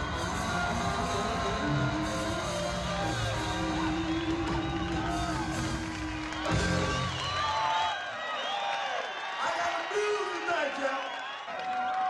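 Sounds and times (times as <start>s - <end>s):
blues band playing: 0.0s - 7.4s.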